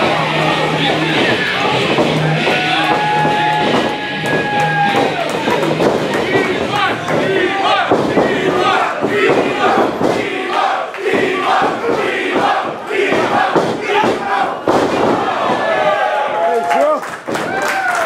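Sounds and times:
crowd yelling and cheering: 0.0s - 18.0s.

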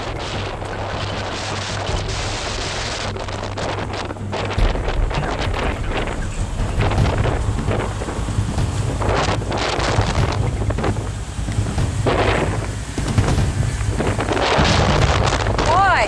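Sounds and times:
engine droning: 0.0s - 16.0s
wind buffeting microphone: 0.0s - 16.0s.

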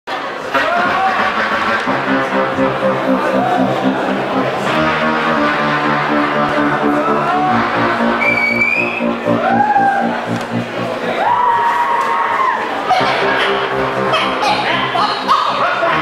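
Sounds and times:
sustained bass notes: 0.4s - 16.0s.

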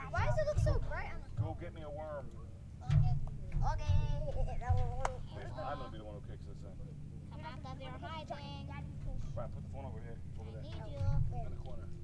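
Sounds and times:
casual talking voices: 0.0s - 12.0s.

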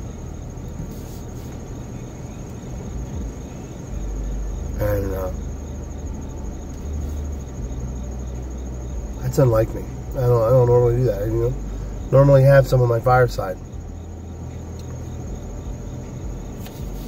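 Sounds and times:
crickets trilling: 0.0s - 17.0s
low steady rumble: 0.0s - 17.0s.

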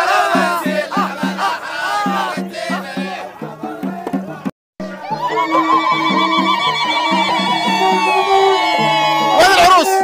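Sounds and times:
festive music with low beat: 0.0s - 10.0s
women ululating: 4.8s - 10.0s.

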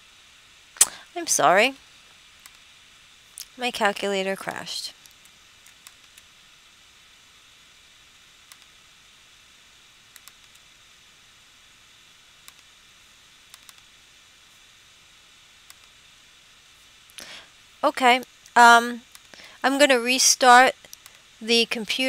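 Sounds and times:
faint room hiss: 0.0s - 22.0s
computer mouse clicks: 2.4s - 2.6s, 5.0s - 6.3s, 8.4s - 8.7s, 10.1s - 10.7s, 12.4s - 12.7s, 13.5s - 13.9s, 15.6s - 16.0s, 20.8s - 21.2s.

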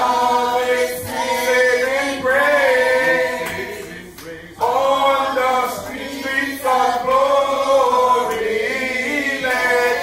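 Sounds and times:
unaccompanied hymn singing: 0.0s - 10.0s.

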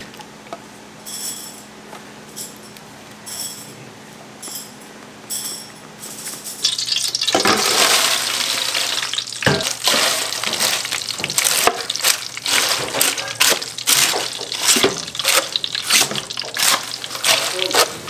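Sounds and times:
food sizzling in hot oil: 6.6s - 18.0s
wooden spatula scraping pan: 9.8s - 18.0s.

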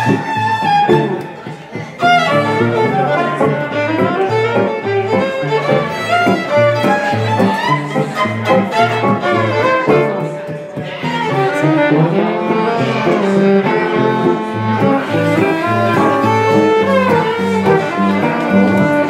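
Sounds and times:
acoustic guitars strumming: 0.0s - 19.0s
violin bowing melody: 0.0s - 19.0s.

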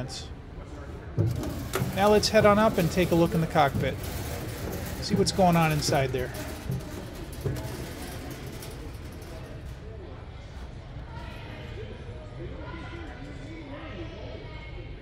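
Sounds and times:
distant people talking: 0.0s - 15.0s.

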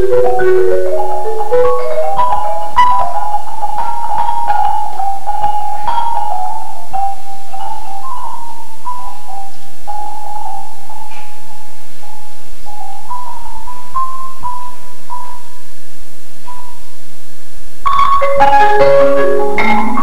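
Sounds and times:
marimba melody: 0.0s - 15.6s, 17.9s - 20.0s.

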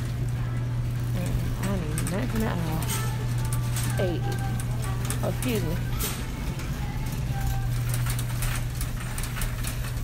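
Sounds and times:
shopping cart rattling: 0.0s - 10.0s
steady low hum: 0.0s - 10.0s.

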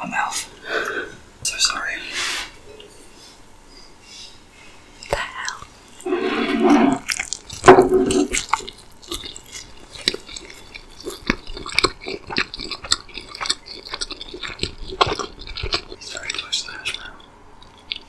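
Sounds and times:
moist chewing and biting: 7.0s - 18.0s.

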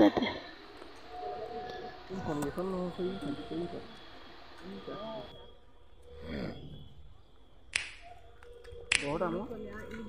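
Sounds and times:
sharp snap: 7.7s - 8.0s, 8.9s - 9.2s.

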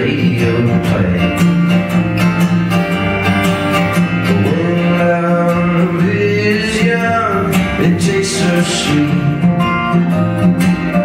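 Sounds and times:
man singing: 0.0s - 1.7s, 4.2s - 9.8s
acoustic guitar strumming: 0.0s - 11.0s.

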